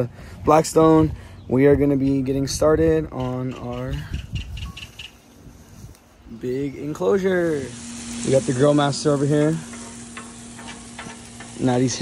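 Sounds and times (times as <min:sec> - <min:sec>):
wind buffeting microphone: 0:00.2 - 0:06.2.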